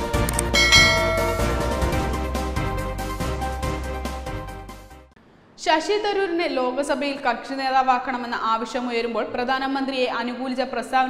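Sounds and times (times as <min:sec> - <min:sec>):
background music: 0:00.0 - 0:05.1
bright bell chime: 0:00.5 - 0:02.5.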